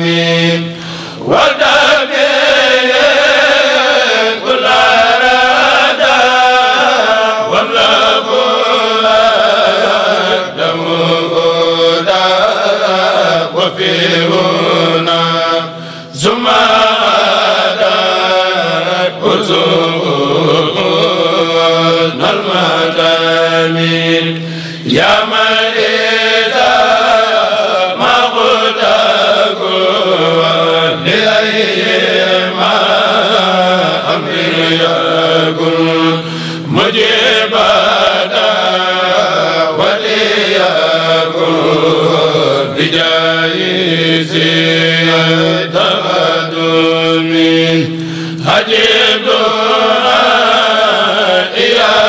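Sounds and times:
men chanting together: 0.0s - 52.0s.

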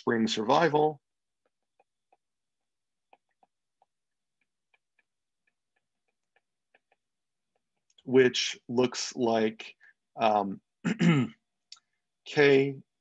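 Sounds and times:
stylus tapping on tablet screen: 1.1s - 8.0s.

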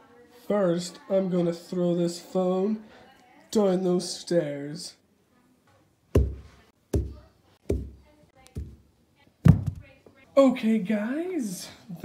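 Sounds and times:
phone thudding down carpeted stairs: 6.2s - 8.8s, 9.4s - 9.9s.

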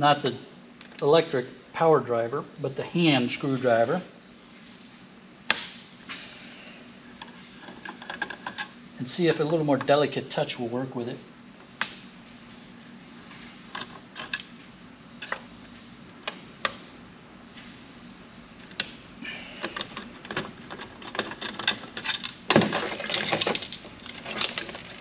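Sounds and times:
faint steady hum: 0.0s - 25.0s.

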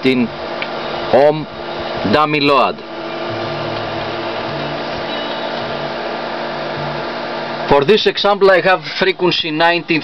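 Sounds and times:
electric fan whirring: 0.0s - 10.0s.

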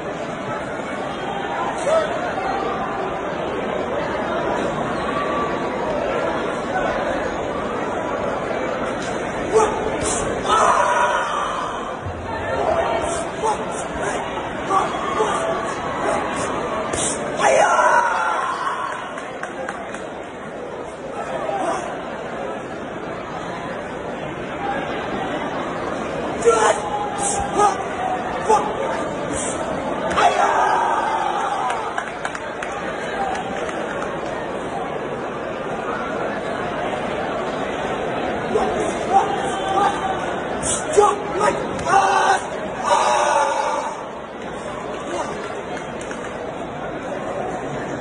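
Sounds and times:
crowd chatter echoing in hall: 0.0s - 48.0s
murmur of voices: 0.0s - 48.0s.

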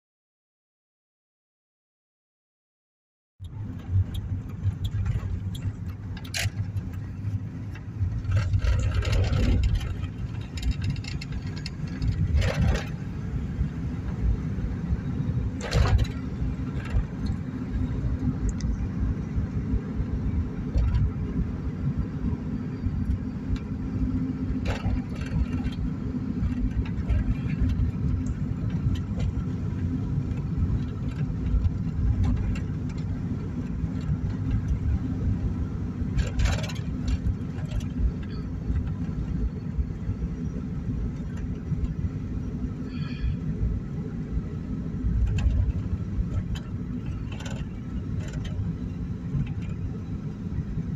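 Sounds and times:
car road and engine rumble: 3.4s - 50.9s.

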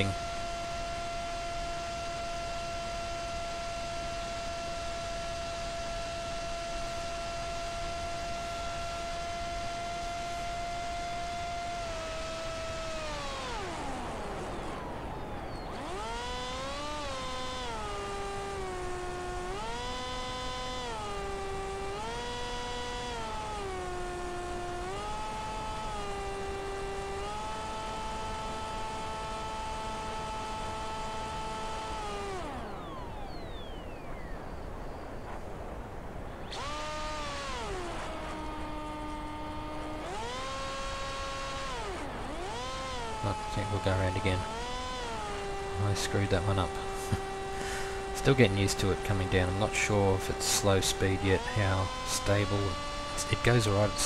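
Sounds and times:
electric motor propeller whine: 0.0s - 54.0s.

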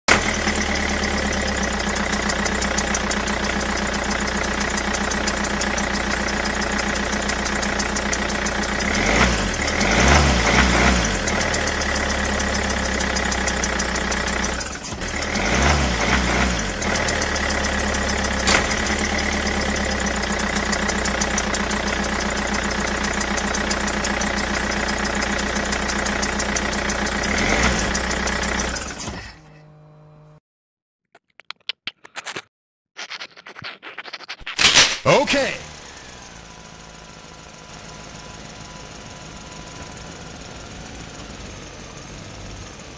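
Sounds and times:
tractor engine idling: 0.1s - 15.6s, 16.6s - 29.0s.

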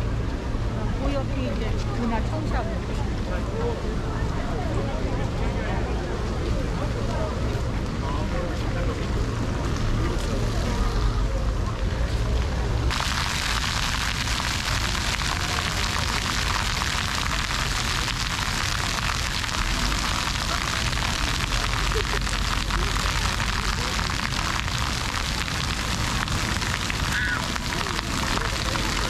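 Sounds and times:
fountain water splashing on paving: 5.8s - 29.0s.

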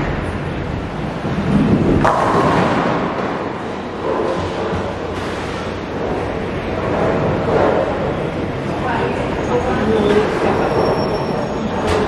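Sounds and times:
bowling ball rolling on wooden lane: 0.7s - 9.2s
bowling pins crashing: 1.1s - 8.6s.

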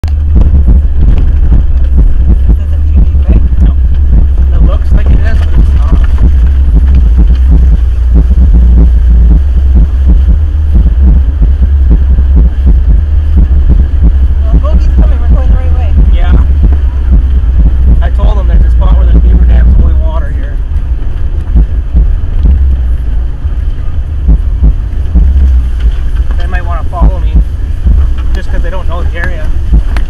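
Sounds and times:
vehicle low rumble: 0.0s - 30.0s.

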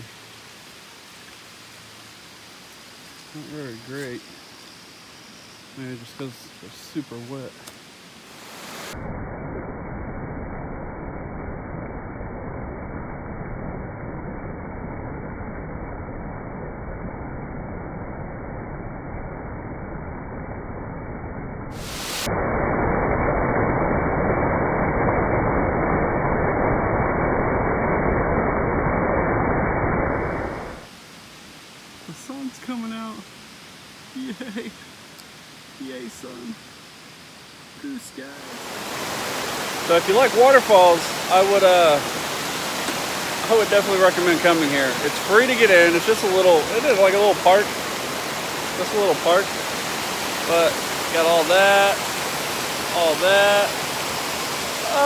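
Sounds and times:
creek rushing over rocks: 37.8s - 55.0s.

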